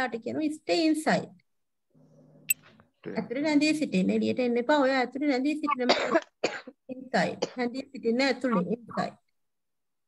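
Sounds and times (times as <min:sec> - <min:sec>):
person coughing: 0:05.8 - 0:06.8.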